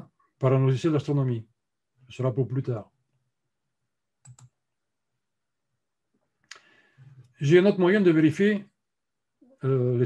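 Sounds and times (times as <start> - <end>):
computer mouse double click: 4.2 - 4.5.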